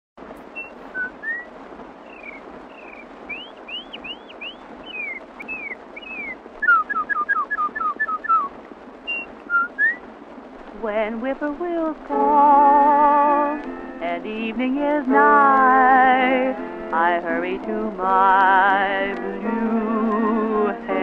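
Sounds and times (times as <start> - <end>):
record hiss: 0.2 - 21.0
whistled bird-call imitations: 0.5 - 10.0.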